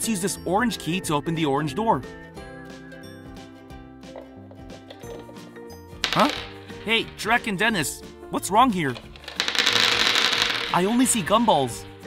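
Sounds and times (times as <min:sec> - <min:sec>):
gumballs clattering onto a tabletop: 0:04.2 - 0:05.4, 0:06.0 - 0:07.2, 0:08.9 - 0:12.0.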